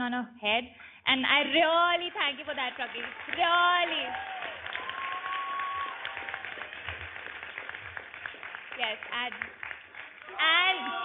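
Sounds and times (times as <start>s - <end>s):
crowd applause: 2.8s - 11.0s.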